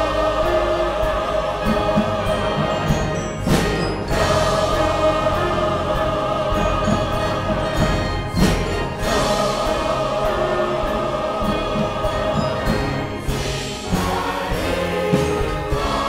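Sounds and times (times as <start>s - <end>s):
choir singing with orchestra: 0.0s - 16.0s.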